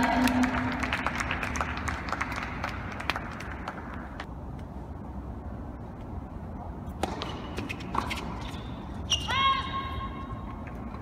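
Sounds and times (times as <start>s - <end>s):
spectators applauding: 0.0s - 3.8s.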